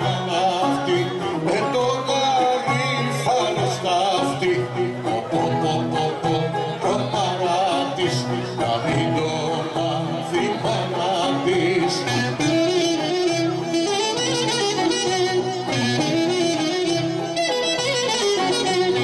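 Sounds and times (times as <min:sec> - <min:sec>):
people singing: 0:00.0 - 0:12.5
low instrumental accompaniment: 0:00.0 - 0:19.0
violin melody: 0:00.0 - 0:19.0.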